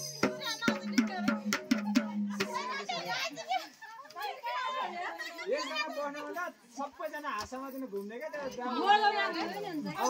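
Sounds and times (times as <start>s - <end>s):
women and children talking: 0.0s - 6.6s, 8.4s - 10.0s.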